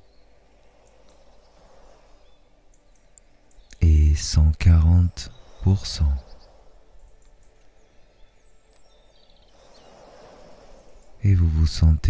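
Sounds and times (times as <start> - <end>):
birds singing and chirping: 0.0 - 12.0
sea waves: 0.0 - 12.0
bird trill: 5.2 - 11.2.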